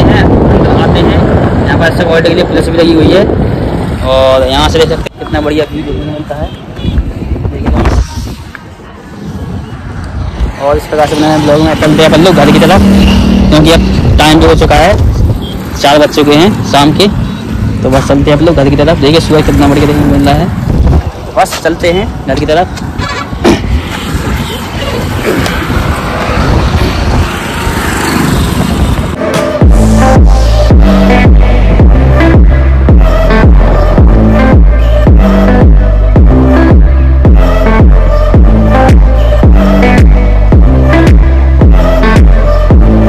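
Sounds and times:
road traffic on a bridge: 0.0s - 43.0s.

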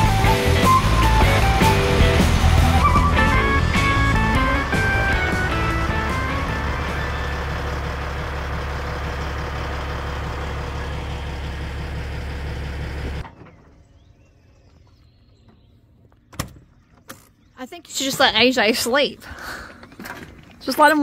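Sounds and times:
truck diesel engine idling: 0.0s - 13.2s.

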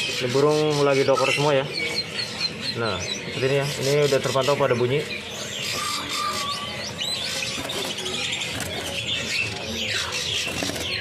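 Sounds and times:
songbirds chirping and whistling: 0.0s - 11.0s.

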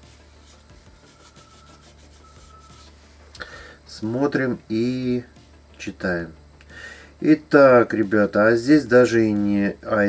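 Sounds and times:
scratchy strokes: 0.0s - 3.2s
rubbing and handling noises: 0.0s - 3.3s
steady low hum: 0.0s - 10.0s.

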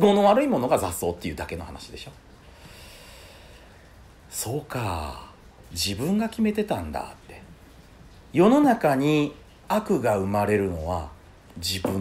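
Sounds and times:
soft breath through the nose: 2.4s - 4.2s.

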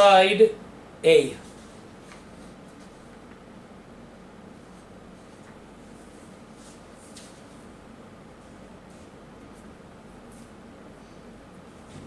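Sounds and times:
low room hum: 0.0s - 12.0s
paper rustling: 1.4s - 3.3s, 4.6s - 7.7s.

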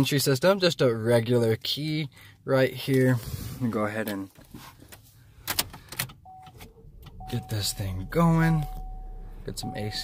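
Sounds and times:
faint electronic tone: 7.2s - 10.0s.

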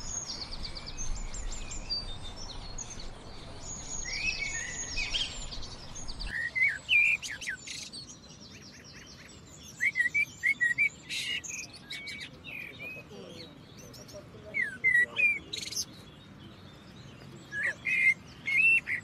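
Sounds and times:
faint outdoor background: 0.0s - 19.0s
songbirds chirping: 0.0s - 19.0s.

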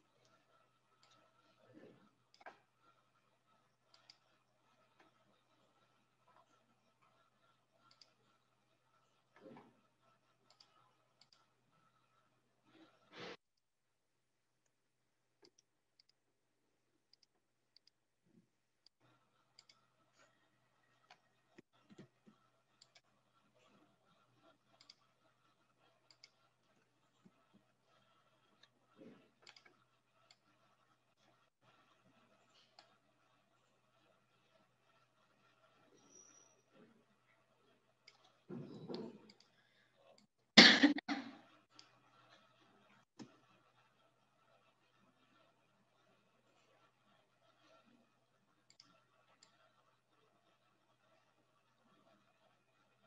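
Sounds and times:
computer mouse clicks: 0.0s - 12.1s, 15.4s - 16.2s, 17.1s - 18.0s, 18.8s - 36.5s, 38.0s - 39.6s, 48.6s - 49.8s
faint clicks: 18.8s - 20.2s
person coughing sharply: 40.6s - 41.3s.

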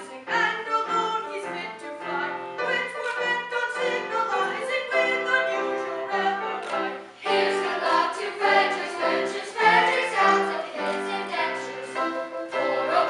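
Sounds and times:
children's chorus singing opera: 0.0s - 13.0s.

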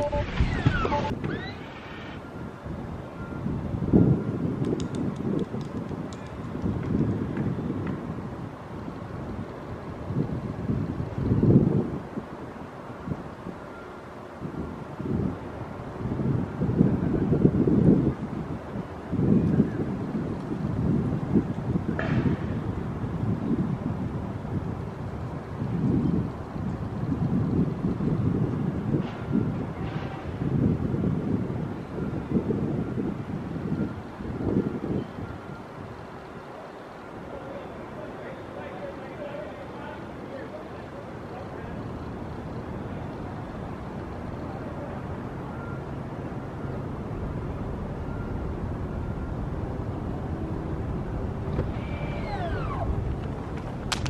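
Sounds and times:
wind buffeting microphone: 0.0s - 13.7s, 14.4s - 36.2s, 41.8s - 54.0s
faint clicks: 4.6s - 8.0s.

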